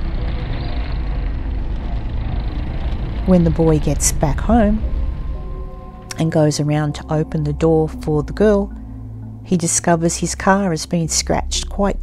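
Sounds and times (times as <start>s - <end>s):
car engine and tyre rumble: 0.0s - 6.1s.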